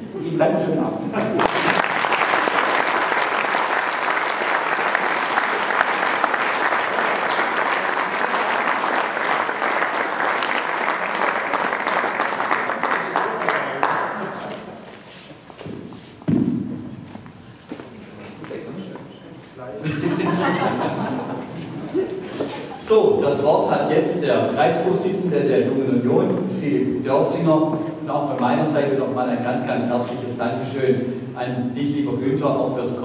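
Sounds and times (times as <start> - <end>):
audience applauding: 1.2 - 14.8.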